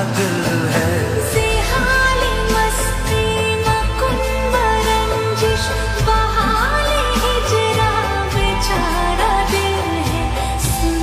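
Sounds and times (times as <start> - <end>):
bass and backing chords: 0.0 - 11.0.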